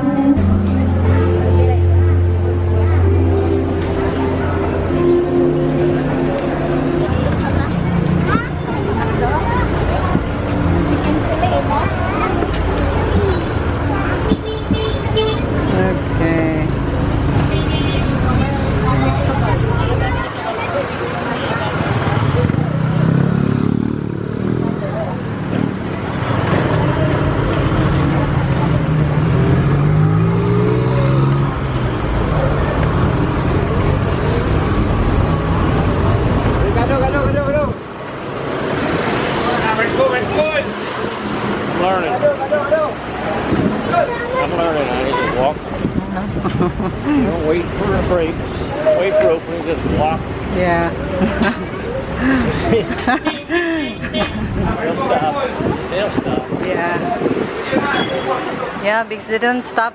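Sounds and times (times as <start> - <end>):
people's voices: 0.0 - 59.9
vehicle engines passing: 0.0 - 59.9
engine revving up: 22.0 - 36.4.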